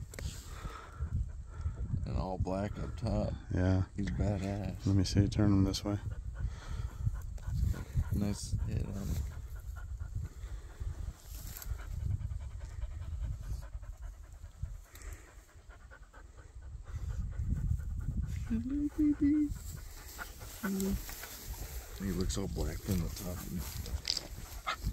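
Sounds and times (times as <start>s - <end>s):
low rumble on microphone: 0.0s - 24.9s
dog panting: 4.4s - 24.9s.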